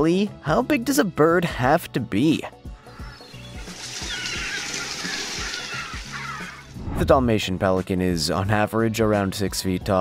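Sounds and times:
background music: 0:00.0 - 0:10.0
water splashing: 0:03.0 - 0:06.8
birds flapping wings: 0:03.3 - 0:06.7.

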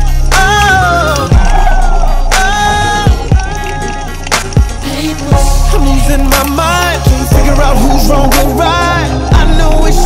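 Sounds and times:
hip-hop song playing: 0:00.0 - 0:10.0.

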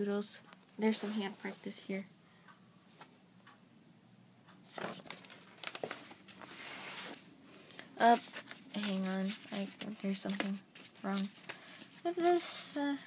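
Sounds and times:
paper pages rustling: 0:04.7 - 0:07.3, 0:08.0 - 0:12.4
paper scraping: 0:04.7 - 0:07.3, 0:08.0 - 0:12.3.

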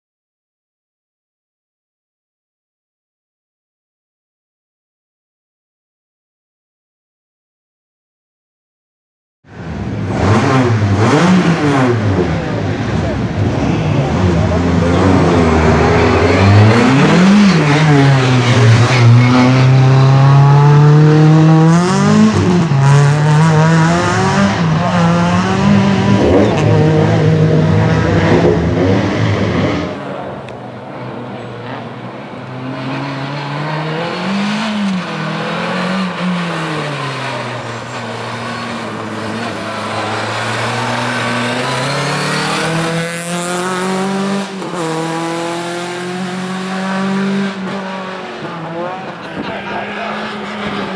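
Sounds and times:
race car engine revving: 0:09.5 - 0:50.9.

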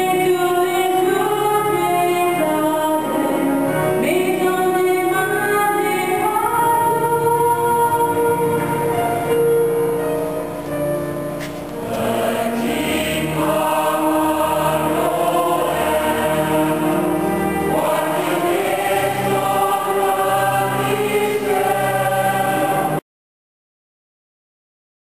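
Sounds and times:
choir singing held chords: 0:00.0 - 0:09.6, 0:11.5 - 0:23.0.

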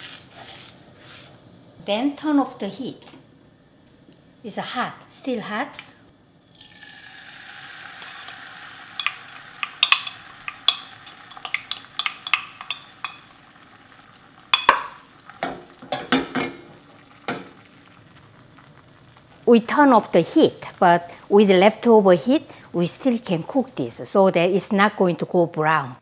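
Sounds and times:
egg sizzling in frying pan: 0:06.4 - 0:22.8
pan and utensil knocks: 0:08.0 - 0:13.4, 0:14.6 - 0:17.6.

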